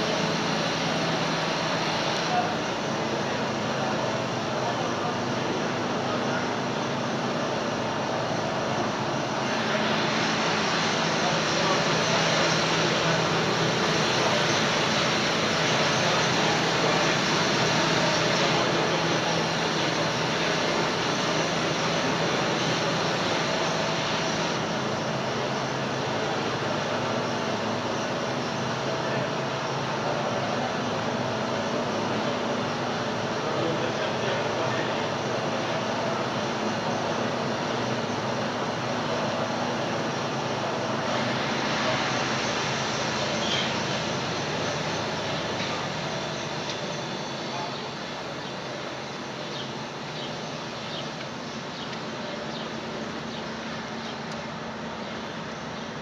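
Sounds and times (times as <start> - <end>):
boiler plant machinery noise: 0.0 - 56.0.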